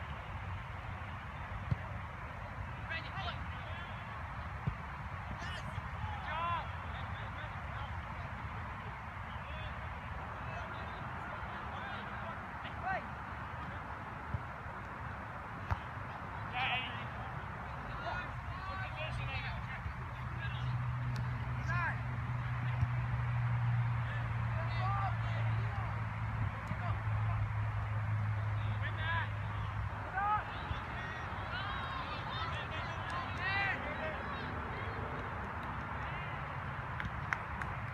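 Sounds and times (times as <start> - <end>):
distant players shouting: 24.0 - 27.5, 28.4 - 35.2.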